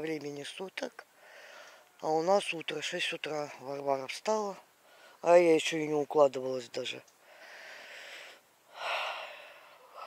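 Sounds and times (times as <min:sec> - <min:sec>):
person breathing: 0:01.1 - 0:01.9, 0:04.8 - 0:05.2, 0:07.2 - 0:10.0.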